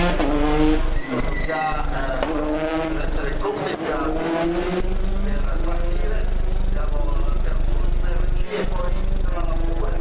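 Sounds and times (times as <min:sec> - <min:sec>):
rally car engine running hard: 0:00.0 - 0:10.0.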